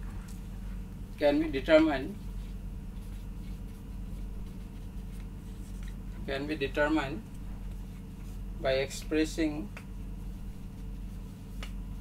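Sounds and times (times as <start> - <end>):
low room tone hum: 0.0 - 12.0.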